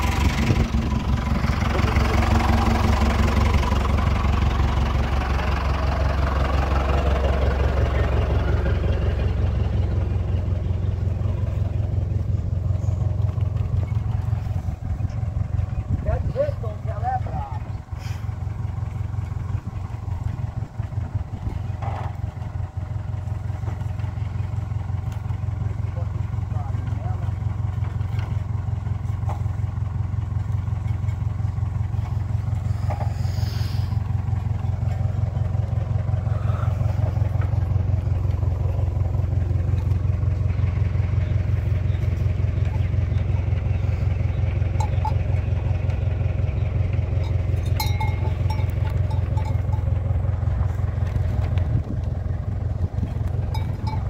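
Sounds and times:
truck engine idling: 0.0 - 54.0.

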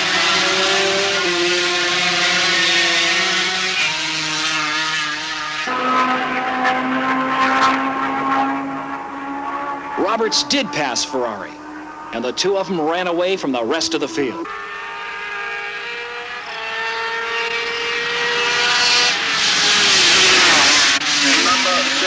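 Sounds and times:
racing motorcycles at high revs: 0.0 - 22.0.

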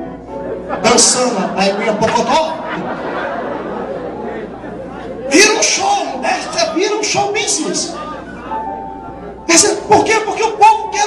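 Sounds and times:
man preaching: 0.8 - 2.8, 5.2 - 8.6, 9.4 - 11.0.

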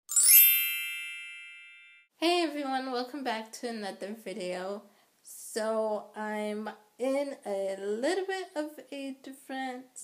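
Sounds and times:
sparkling bell-like chime: 0.1 - 2.1.

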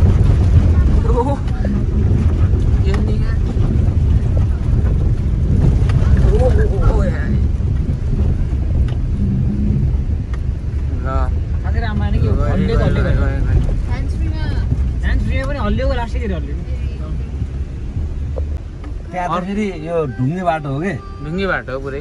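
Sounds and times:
car engine and tyres rumbling: 0.0 - 22.0
people talking: 0.5 - 5.1, 5.9 - 7.5, 11.0 - 17.4, 19.1 - 22.0.

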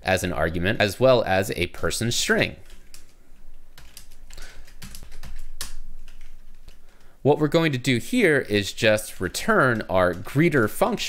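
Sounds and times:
computer keyboard typing: 2.6 - 7.1, 9.0 - 11.0.

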